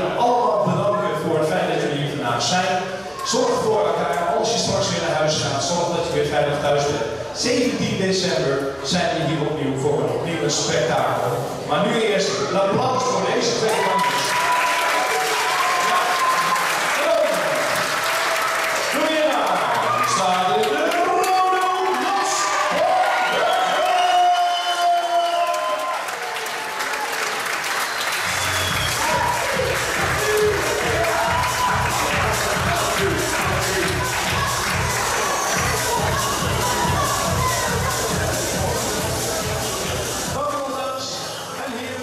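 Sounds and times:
crowd chatter: 0.0 - 14.0, 26.6 - 42.0
applause: 13.7 - 37.1
song over loudspeakers: 28.2 - 40.5
steady bass beat: 28.3 - 40.4.

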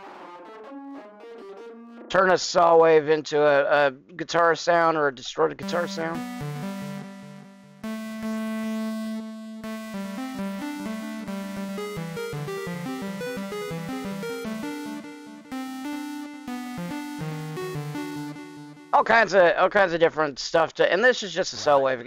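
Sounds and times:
distorted synthesizer melody: 5.6 - 19.3.

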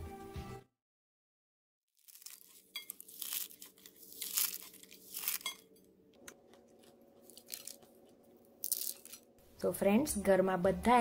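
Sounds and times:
fried pastry crunching in hand: 2.0 - 9.3.

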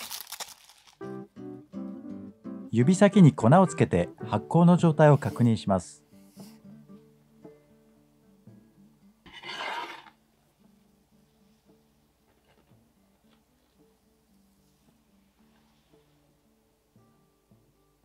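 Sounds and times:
soft guitar music: 1.0 - 18.0
glass bowl scraping on stone: 9.3 - 10.2.

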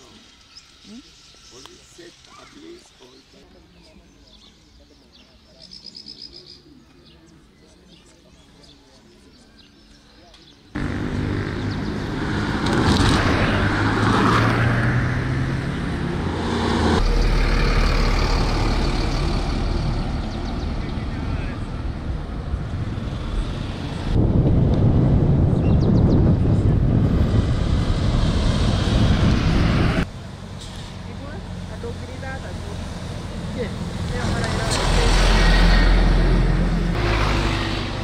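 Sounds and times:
tyres on tarmac road: 0.0 - 38.0
vehicles driving past: 10.7 - 38.0
low engine hum: 10.8 - 38.0.

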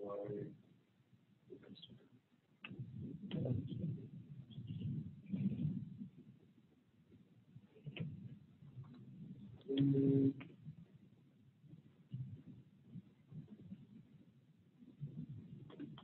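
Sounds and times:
muffled low sounds: 0.0 - 16.0
person speaking: 9.7 - 10.4.

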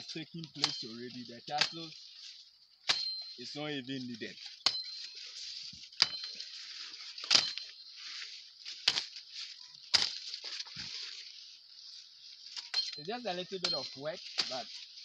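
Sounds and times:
machete chopping plant stalks: 0.4 - 0.9, 1.5 - 2.0, 2.8 - 3.4, 4.3 - 7.8, 8.6 - 11.2, 12.5 - 15.0.

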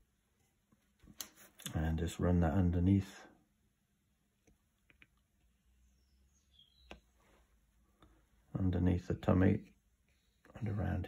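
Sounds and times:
faint high chirps: 5.6 - 7.4.

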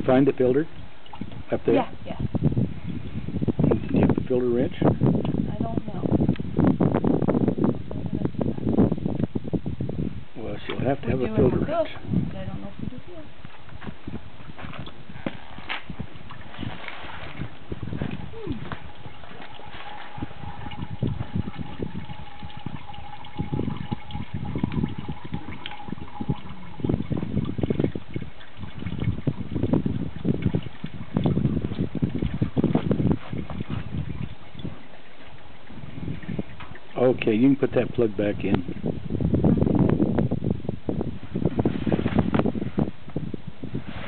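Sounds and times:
oil dribbling into plastic bucket: 0.0 - 5.4, 13.4 - 38.8
irregular low rumbles: 11.5 - 40.0.

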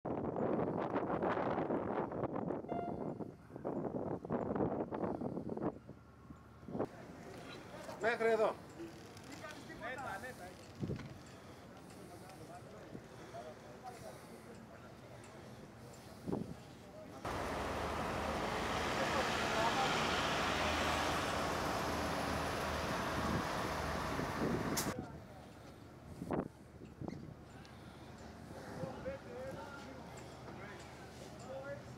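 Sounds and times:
brief high tone: 2.7 - 3.2
vehicle engines running: 17.2 - 25.0
ambulance driving past: 17.3 - 25.0
wind buffeting microphone: 21.2 - 25.0.

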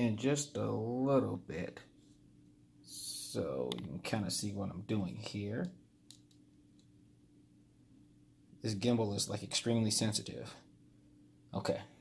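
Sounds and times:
soft clicks: 5.2 - 6.9.

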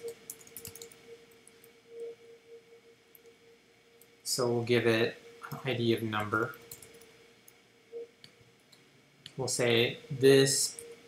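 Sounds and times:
keyboard keys clicking: 0.0 - 1.0, 6.2 - 7.0
faint steady hum: 0.0 - 11.0.

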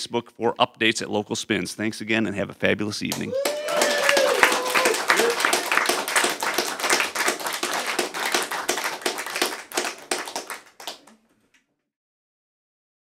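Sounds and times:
audience applauding: 3.1 - 11.2.

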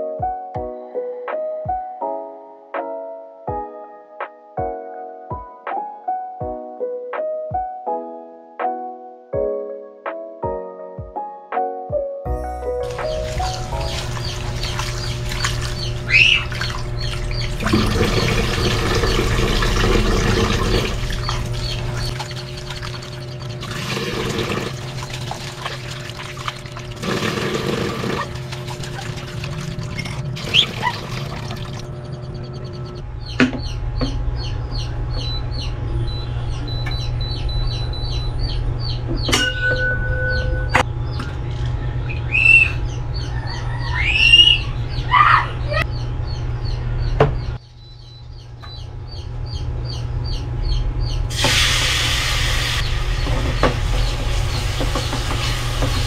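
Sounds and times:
rice washed by hand: 12.8 - 32.1, 51.3 - 56.0
tap water running into pot: 12.9 - 31.8, 53.2 - 56.0
birds chirping: 12.9 - 56.0
steady low hum: 12.9 - 56.0
faint bird chirps: 13.0 - 18.2, 33.6 - 46.8
bird arching calls: 13.1 - 17.6, 42.1 - 42.9, 43.6 - 45.4.

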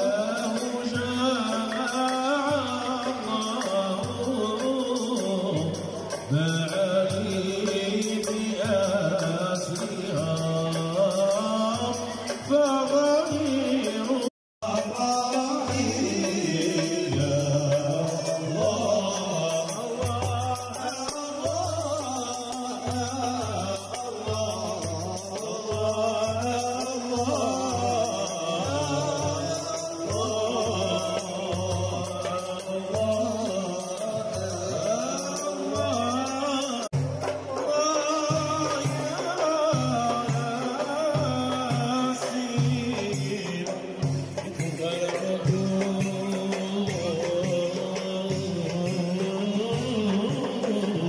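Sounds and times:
frame drum beat: 0.0 - 51.0
goblet drum beat: 0.0 - 51.0
men chanting: 0.0 - 51.0
men singing together: 0.0 - 51.0.

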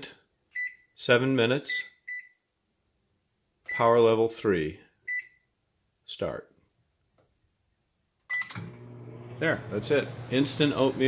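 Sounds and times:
microwave keypad beep: 8.3 - 8.7
microwave oven humming: 8.5 - 11.0.

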